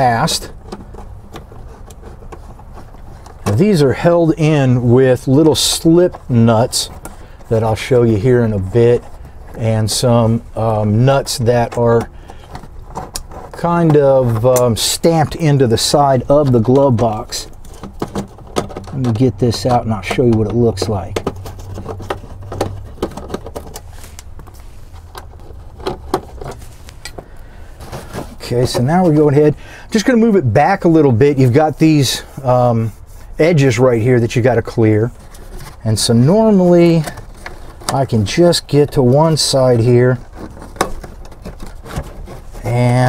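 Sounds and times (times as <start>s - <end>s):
low steady hum: 0.0s - 43.0s
plastic liner scraping: 0.0s - 43.0s.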